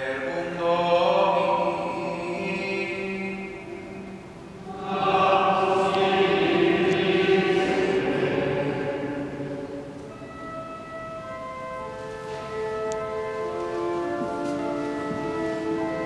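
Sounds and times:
choir singing chant: 0.0s - 10.1s
sustained organ notes: 0.0s - 16.0s.

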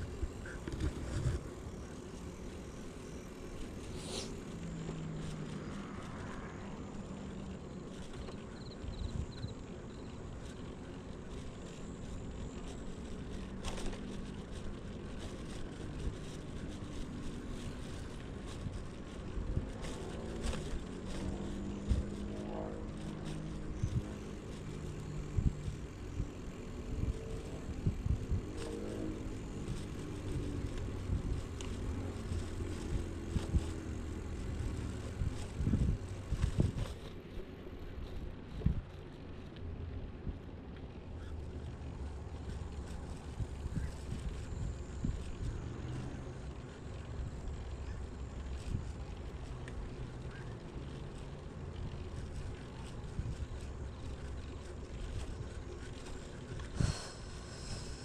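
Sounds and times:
wind on microphone: 0.0s - 1.5s, 16.9s - 37.2s, 42.4s - 45.8s
bicycle tyres rumbling on path: 0.0s - 58.0s.

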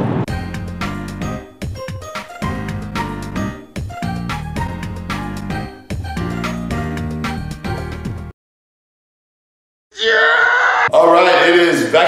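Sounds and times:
man's drawn-out vocal sound: 10.0s - 11.1s.

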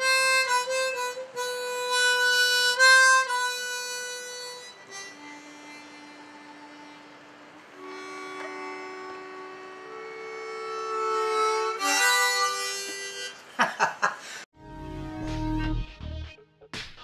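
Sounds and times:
harmonica held notes: 0.0s - 13.5s.

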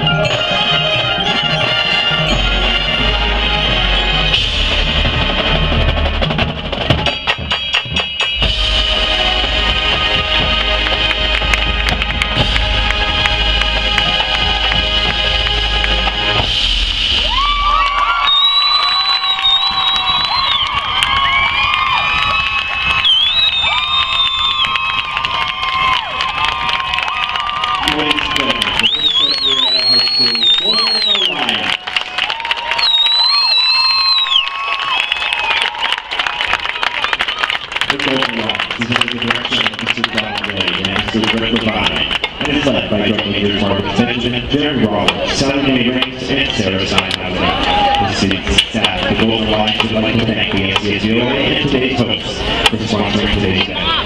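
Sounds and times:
rhythmic percussion strokes: 0.0s - 17.8s
crowd cheering and shouting: 0.0s - 54.0s
marching band playing: 0.0s - 54.0s.

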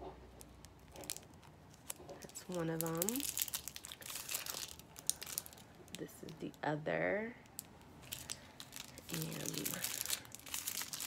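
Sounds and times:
packaging crinkling: 0.4s - 6.6s, 7.4s - 11.0s.

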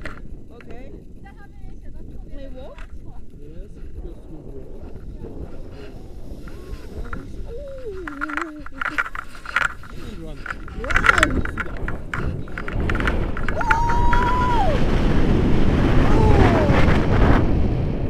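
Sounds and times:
wind rumble on microphone: 0.0s - 18.0s
voices talking: 0.5s - 14.8s.

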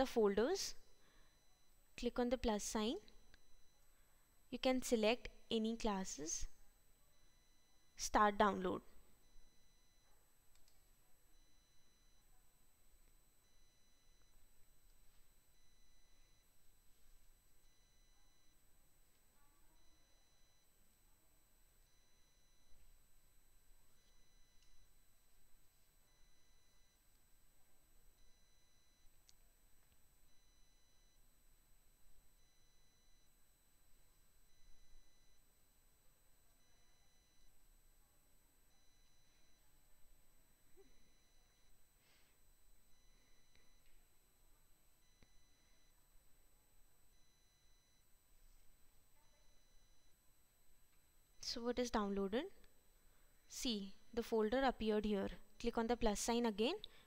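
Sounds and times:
faint high electronic tones: 0.0s - 27.2s, 27.8s - 57.0s.

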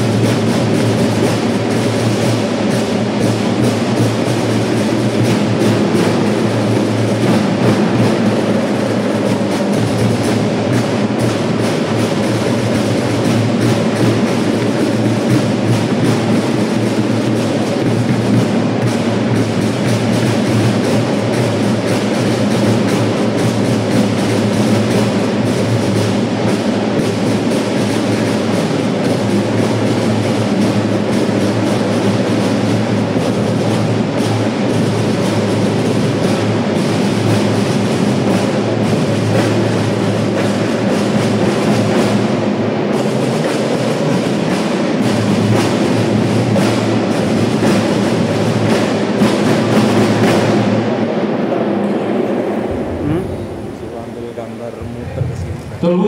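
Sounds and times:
drums and percussion: 0.0s - 56.0s
marching band playing: 0.0s - 56.0s.

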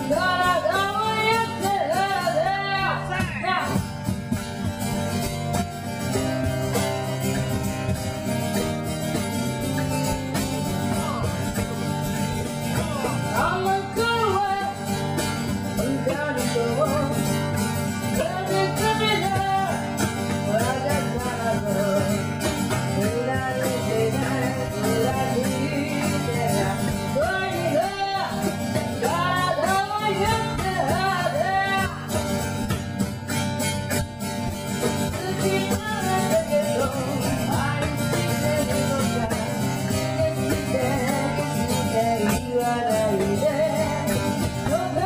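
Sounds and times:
girl singing: 0.0s - 3.8s, 10.4s - 32.2s, 34.8s - 45.0s
cajon beat: 0.0s - 45.0s
strummed acoustic guitar: 0.0s - 45.0s.

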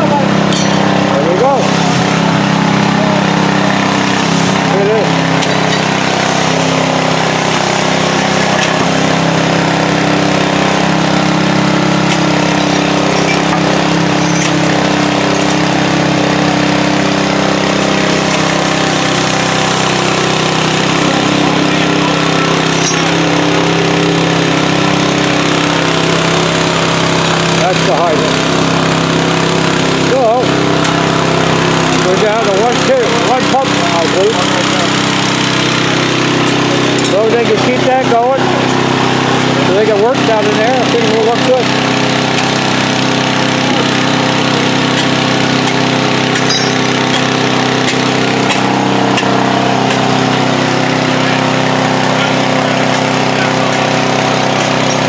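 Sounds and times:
engine running steadily: 0.0s - 55.0s.

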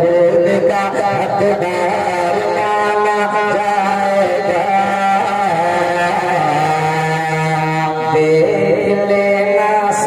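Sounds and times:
man singing into microphone: 0.0s - 10.0s.

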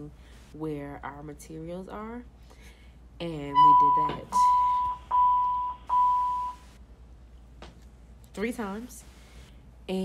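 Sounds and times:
electronic beep tone: 3.5s - 6.6s.

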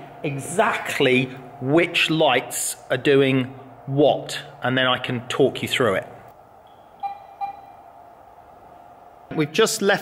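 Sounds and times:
short electronic beeps: 6.7s - 7.8s.

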